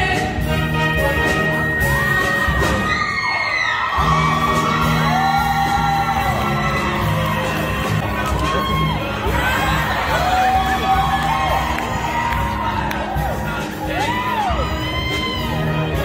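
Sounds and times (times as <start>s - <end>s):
audience whooping and cheering: 1.2s - 16.0s
choir singing with band: 4.0s - 16.0s.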